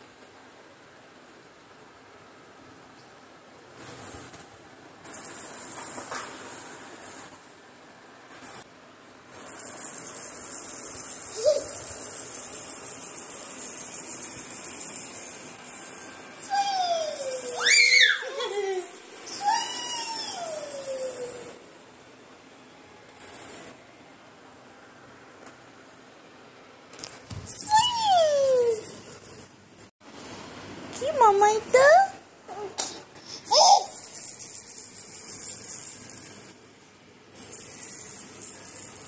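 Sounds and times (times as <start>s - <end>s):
plastic rattle toy shaking: 5.0s - 7.5s, 8.3s - 21.7s, 27.0s - 29.9s, 33.0s - 39.0s
baby's high-pitched call: 16.4s - 21.6s, 27.5s - 28.9s.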